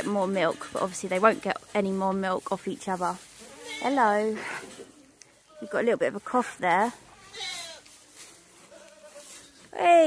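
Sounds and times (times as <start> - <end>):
farm animal call: 3.4 - 5.9, 7.0 - 8.0, 8.6 - 9.4.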